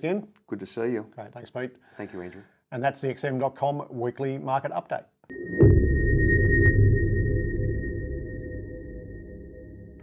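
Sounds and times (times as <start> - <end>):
high ringing tone: 5.3 - 10.0.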